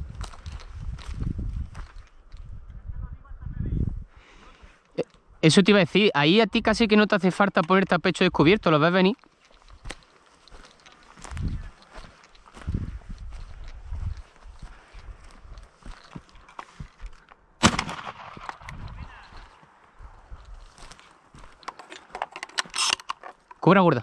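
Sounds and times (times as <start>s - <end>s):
wind rumble: 0.0s - 4.2s, 12.5s - 15.8s, 17.6s - 20.9s
camera handling rustling: 9.2s - 17.4s, 20.4s - 23.6s
shotgun shot: 17.6s - 18.8s.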